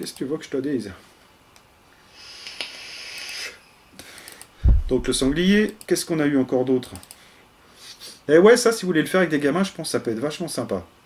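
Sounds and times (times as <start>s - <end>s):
man inhaling smoke: 2.1s - 4.4s.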